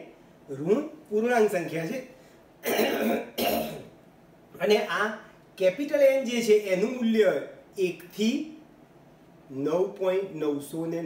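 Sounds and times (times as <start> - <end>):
man speaking: 0.0 - 2.1, 4.6 - 8.6, 9.5 - 11.0
man clearing throat: 2.6 - 4.0.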